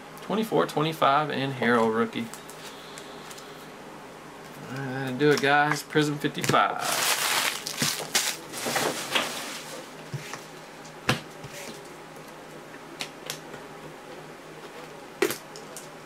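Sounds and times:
handling rustle: 0:06.8 - 0:10.4.

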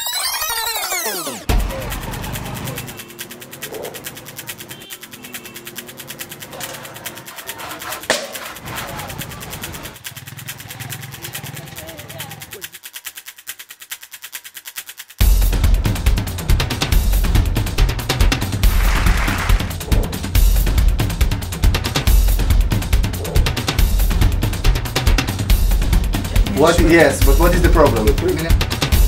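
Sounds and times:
street sound: 0:00.0 - 0:12.9, 0:15.2 - 0:29.0
music with fast pulsing beat: 0:00.0 - 0:29.0.

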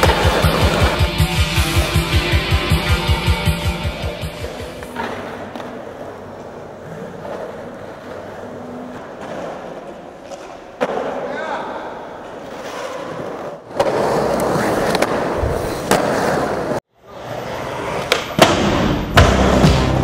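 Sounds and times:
skateboard knocks and landings: 0:00.0 - 0:01.3, 0:18.0 - 0:20.0
skateboard wheels rolling on concrete: 0:00.0 - 0:03.2, 0:03.8 - 0:11.3, 0:11.9 - 0:20.0
music: 0:00.0 - 0:09.1, 0:18.6 - 0:20.0.

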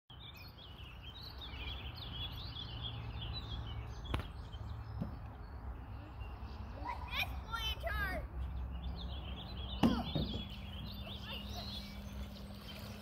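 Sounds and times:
songbirds chirping and trilling: 0:00.1 - 0:13.0.

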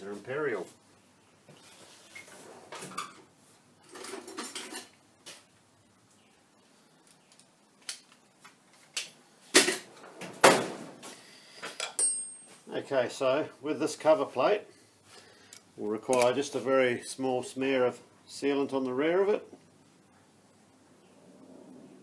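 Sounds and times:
metal hand tools clinking: 0:11.8 - 0:12.6.

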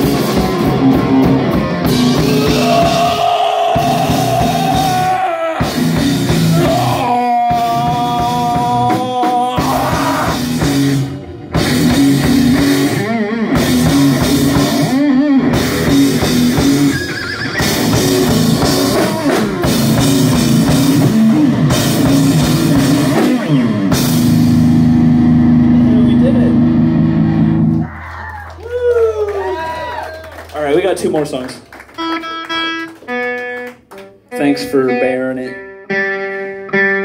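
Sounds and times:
heavy rock band playing: 0:00.0 - 0:27.9
low amplifier hum: 0:23.8 - 0:30.5.

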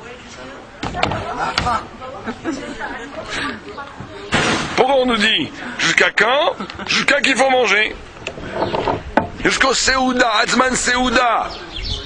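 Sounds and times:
quiet conversational talk: 0:00.0 - 0:12.0.

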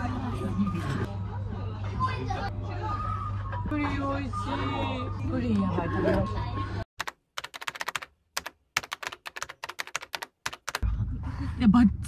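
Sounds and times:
keyboard typing: 0:07.0 - 0:10.8.

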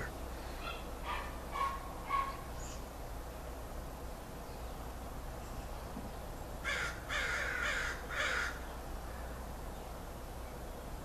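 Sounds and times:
animal's harsh calls: 0:00.0 - 0:02.5, 0:06.6 - 0:08.6.

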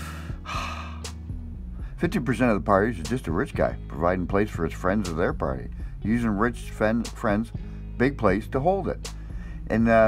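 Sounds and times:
man sighing: 0:00.0 - 0:01.2
man breathing in: 0:00.0 - 0:02.0, 0:09.1 - 0:09.7.

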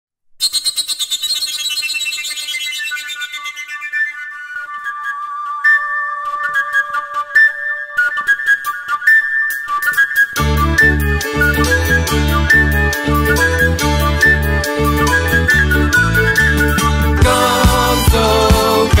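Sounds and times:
overtone flute melody: 0:00.4 - 0:19.0.

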